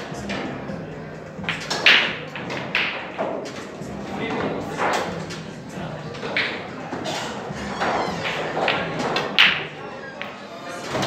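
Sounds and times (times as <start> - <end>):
background chatter: 0.0 - 11.0
pool balls clacking: 0.0 - 11.0.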